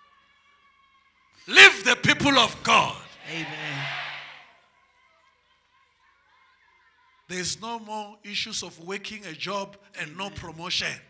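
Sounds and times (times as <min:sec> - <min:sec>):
man saying amen through microphone: 0:01.5 - 0:03.9, 0:07.3 - 0:11.0.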